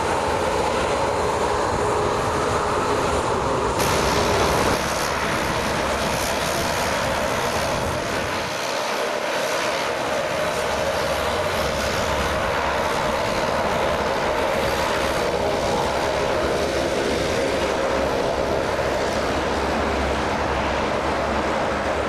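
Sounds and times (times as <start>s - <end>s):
jet engines at taxi power: 0.0s - 22.0s
turboprop engine running: 0.0s - 22.0s.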